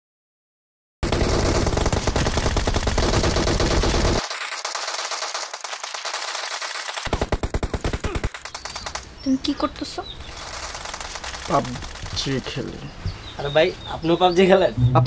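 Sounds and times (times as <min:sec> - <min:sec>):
rapid automatic gunfire: 0:01.0 - 0:09.1, 0:10.2 - 0:12.8.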